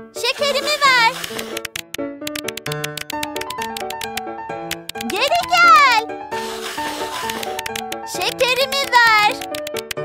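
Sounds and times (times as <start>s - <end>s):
cartoon music with plucked notes: 0.2s - 10.0s
hissing noise: 0.4s - 1.8s.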